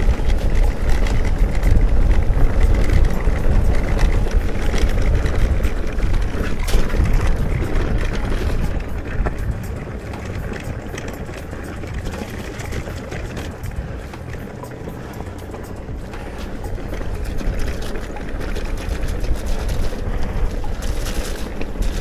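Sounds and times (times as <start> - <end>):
bike rattling and clicking: 0.0 - 22.0
tyre rumble: 0.0 - 22.0
wind buffeting microphone: 0.0 - 22.0.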